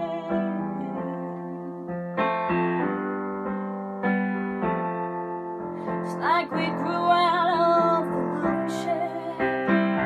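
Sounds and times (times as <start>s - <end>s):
piano chords: 0.0s - 10.0s.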